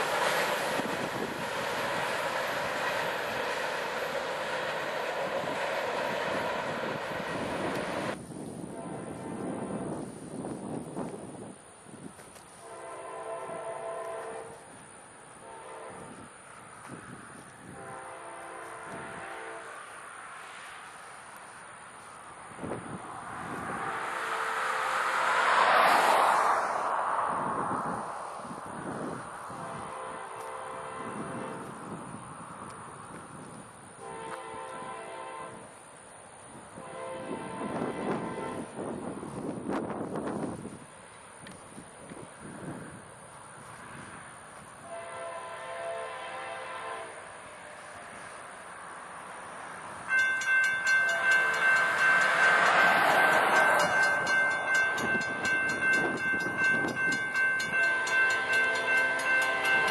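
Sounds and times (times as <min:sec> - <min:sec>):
distant train horn blasts: 0:00.0 - 0:09.4, 0:12.6 - 0:16.5, 0:17.6 - 0:20.1, 0:23.5 - 0:26.2, 0:28.4 - 0:32.0, 0:34.0 - 0:35.9, 0:36.5 - 0:38.9, 0:44.8 - 0:48.4, 0:50.1 - 0:59.9
locomotive air horn chord: 0:12.6 - 0:14.6, 0:15.4 - 0:16.2, 0:17.6 - 0:19.8, 0:29.6 - 0:31.7, 0:34.0 - 0:35.7, 0:36.8 - 0:38.8, 0:44.8 - 0:47.8, 0:57.7 - 0:59.9.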